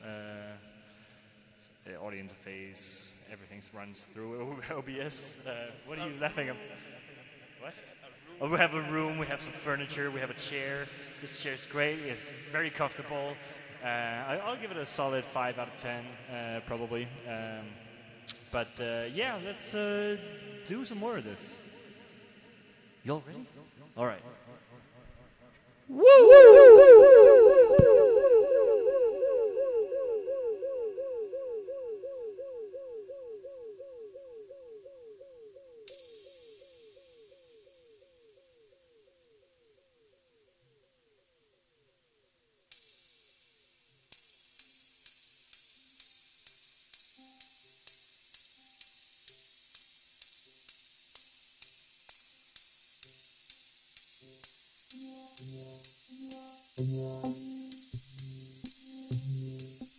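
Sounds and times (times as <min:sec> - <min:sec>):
warbling synthesizer tone: 0:25.9 - 0:35.4
drum machine hi-hat ticking: 0:44.1 - 0:59.9.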